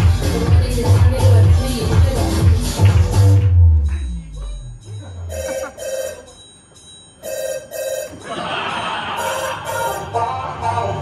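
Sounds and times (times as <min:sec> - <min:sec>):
telephone ringing: 0:04.9 - 0:10.1.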